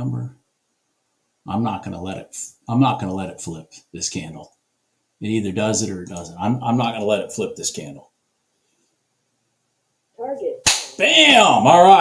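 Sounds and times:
sharp smack: 10.6 - 11.0.

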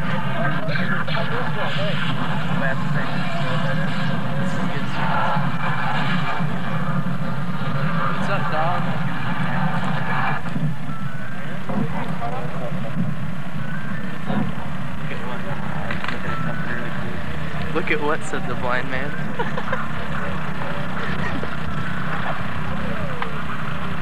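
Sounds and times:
indistinct voices: 0.0 - 24.0.

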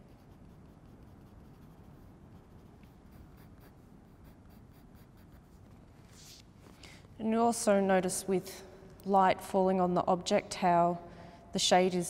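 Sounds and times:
pencil scratching on paper: 0.0 - 6.4.

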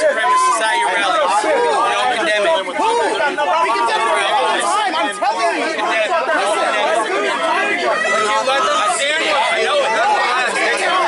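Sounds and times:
overlapping voices talking: 0.0 - 11.0.

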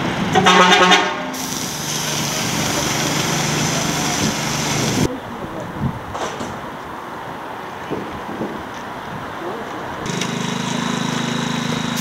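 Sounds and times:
paint spray hissing: 1.4 - 5.1, 10.2 - 12.0
paint sprayer motor running: 1.4 - 5.1, 10.1 - 12.0.

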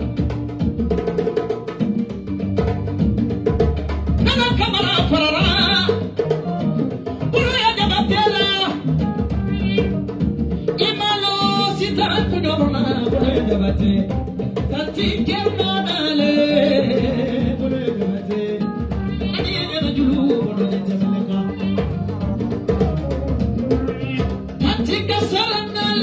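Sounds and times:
hand drums rhythm: 0.0 - 26.0
woman singing into microphone: 4.2 - 6.0, 7.3 - 8.9, 10.8 - 22.0, 24.6 - 26.0.

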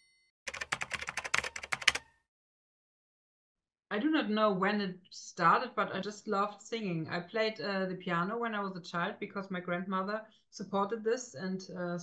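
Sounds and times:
keyboard typing clicks: 0.5 - 2.1.

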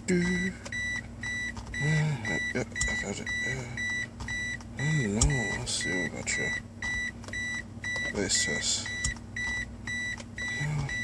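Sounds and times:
car warning chime beeping: 0.1 - 11.0.

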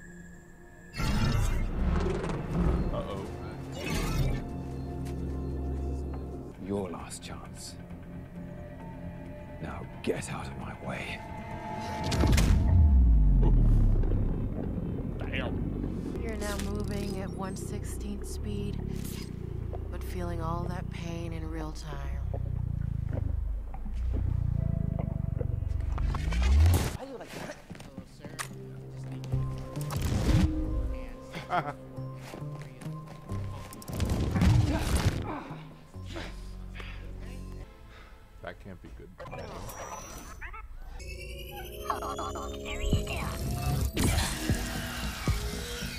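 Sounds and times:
low sustained music: 0.0 - 1.0, 2.5 - 26.4, 28.2 - 33.9, 35.2 - 39.1
deep rumbling: 8.0 - 27.0
low tone sliding downward: 11.2 - 20.0, 22.0 - 26.8.

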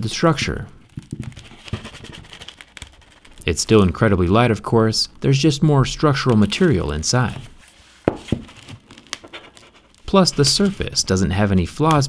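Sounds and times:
tablet crackling and creaking: 0.2 - 4.6, 5.8 - 7.6, 8.2 - 12.0.

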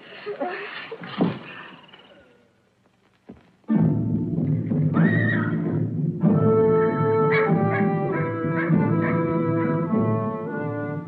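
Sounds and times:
orchestral film music: 3.7 - 11.0
horse whinnying: 4.9 - 5.6.

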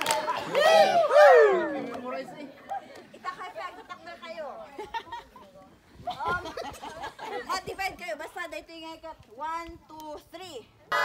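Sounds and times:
people talking and chattering: 0.0 - 11.0.

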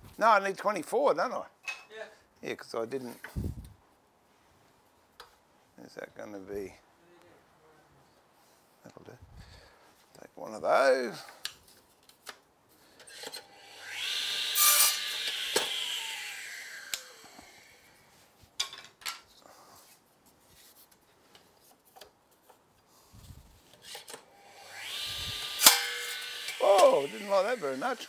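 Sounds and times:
electric saw cutting wood: 13.2 - 17.9, 24.0 - 28.0
saw blade winding down whine: 13.4 - 17.9, 24.3 - 28.0.

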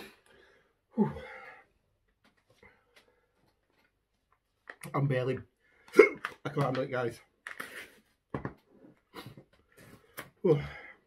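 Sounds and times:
man gasping and whimpering: 0.9 - 1.7, 10.4 - 11.0.

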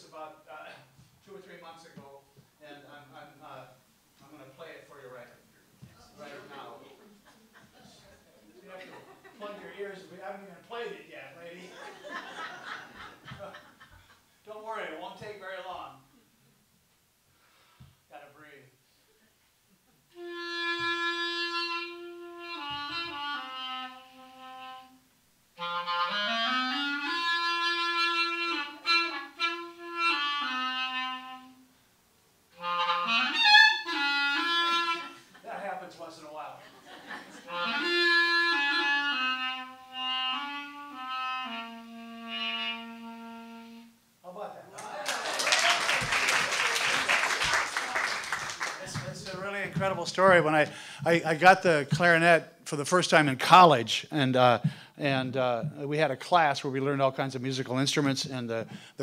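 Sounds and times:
solo clarinet melody: 20.1 - 31.7, 32.5 - 35.3, 37.4 - 44.0
audience applause: 44.8 - 49.5.

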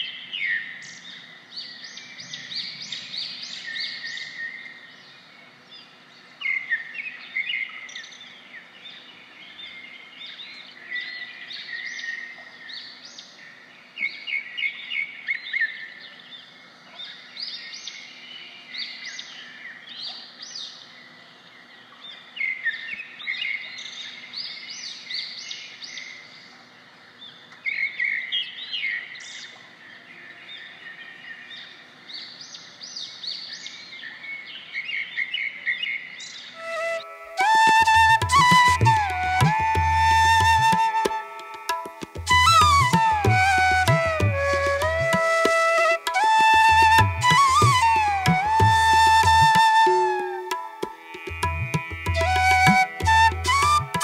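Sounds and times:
faint outdoor background: 0.0 - 54.0.

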